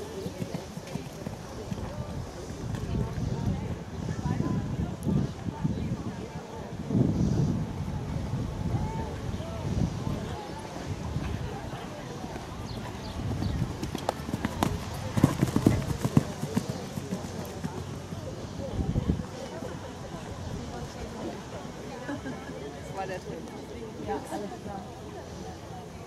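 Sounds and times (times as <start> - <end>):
horse hoofbeats on grass: 12.3 - 17.8.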